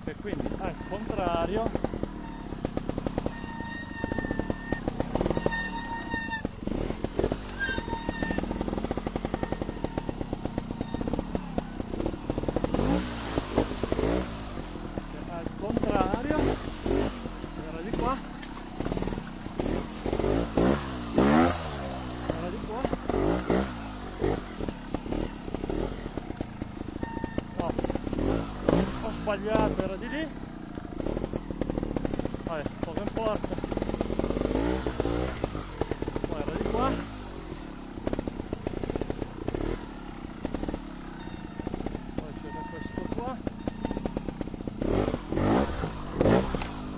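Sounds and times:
motorcycle engine revving: 0:00.0 - 0:46.9.

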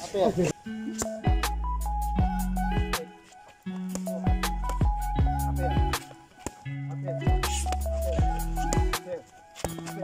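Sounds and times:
electronic beat with bass kicks: 0:04.0 - 0:06.0, 0:07.3 - 0:09.0
held synth melody: 0:04.0 - 0:09.4.

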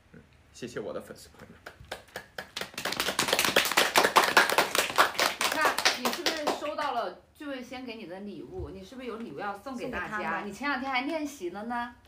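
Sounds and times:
person clapping hands rapidly: 0:01.6 - 0:06.9.

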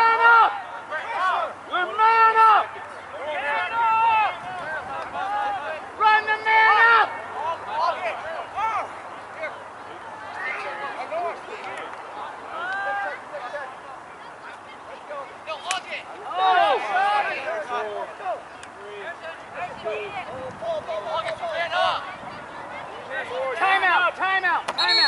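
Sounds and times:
people yelling calls: 0:00.0 - 0:09.6, 0:15.4 - 0:25.0.

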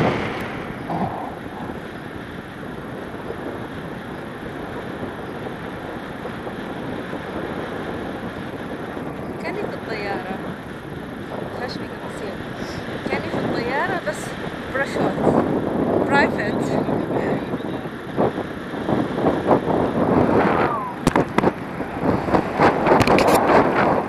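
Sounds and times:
wind rushing over microphone: 0:00.0 - 0:24.0.

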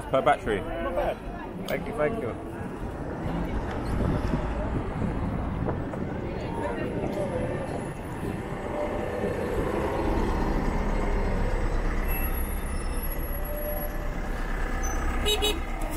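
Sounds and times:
bus engine rumble: 0:00.0 - 0:15.9
city street traffic: 0:00.0 - 0:15.9.

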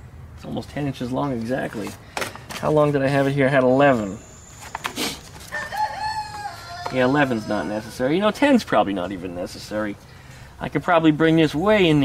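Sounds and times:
rooster crowing: 0:05.5 - 0:08.3.

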